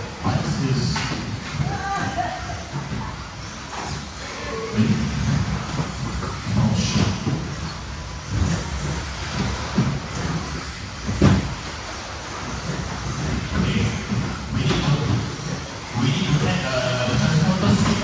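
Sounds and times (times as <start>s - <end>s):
rc cars motor and tyre noise: 1.8s - 18.0s.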